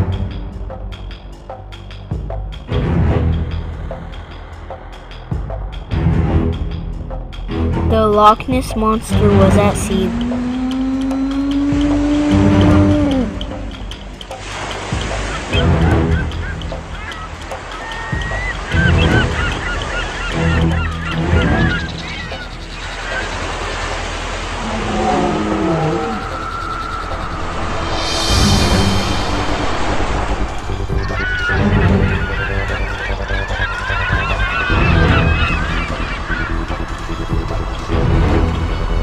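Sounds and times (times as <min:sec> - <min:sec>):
background music: 0:00.0 - 0:39.0
honking bird-like calls: 0:09.9 - 0:27.4, 0:30.9 - 0:37.0.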